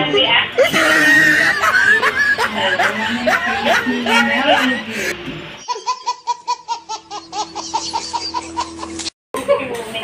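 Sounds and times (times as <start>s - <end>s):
baby laughing: 0.6s - 9.1s.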